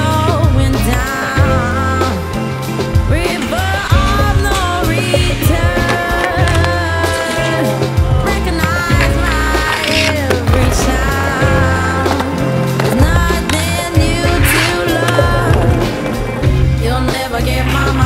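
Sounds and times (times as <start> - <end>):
background music with bass line: 0.0 - 18.0
inline skate wheels rolling and grinding: 0.0 - 18.0
skate landing knocks: 4.2 - 16.4.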